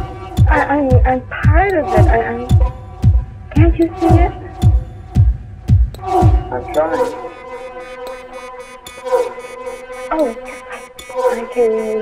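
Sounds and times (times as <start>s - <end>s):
hi-hat-like ticks: 0.0s - 12.0s
synth drone: 0.0s - 12.0s.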